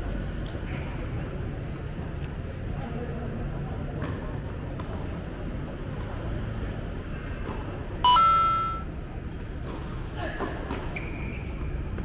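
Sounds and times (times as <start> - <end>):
bright electronic chime: 8.1 - 8.8.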